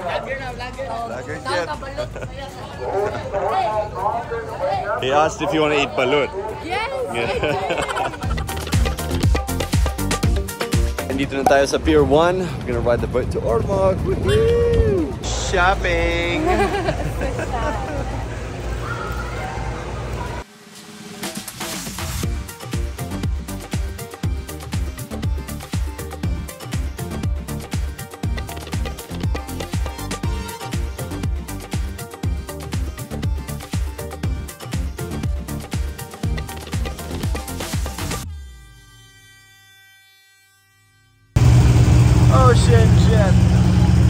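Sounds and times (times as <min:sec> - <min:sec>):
shop chatter: 0:00.0 - 0:08.7, 0:17.0 - 0:20.5
upbeat dance track: 0:21.2 - 0:38.3
large engine idling: 0:41.4 - 0:44.0.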